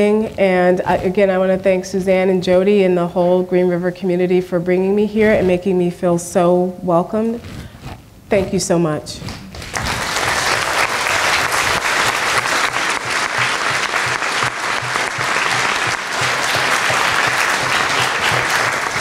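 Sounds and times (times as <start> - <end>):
audience applauding: 9.5 - 19.0.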